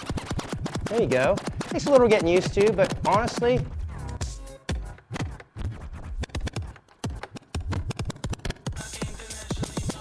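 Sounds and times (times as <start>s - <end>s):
dj scratching music: 0.1s - 10.0s.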